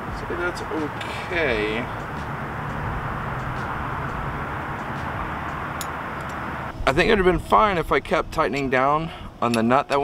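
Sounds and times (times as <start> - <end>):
low outdoor hum: 0.0 - 10.0.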